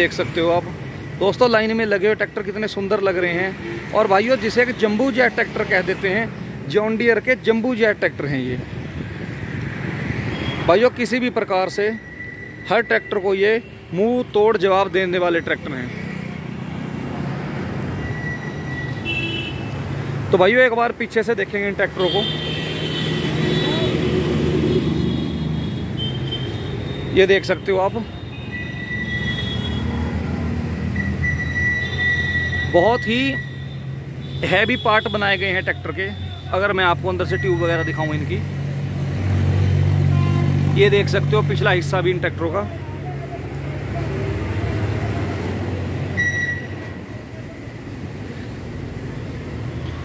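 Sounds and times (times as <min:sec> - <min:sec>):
short high-pitched beep: 0:12.0 - 0:13.2, 0:18.0 - 0:19.0, 0:46.2 - 0:46.8.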